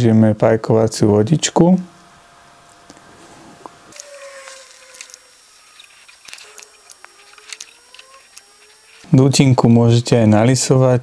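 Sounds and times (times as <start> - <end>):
soldering iron crackling on flux: 3.9 - 9.8.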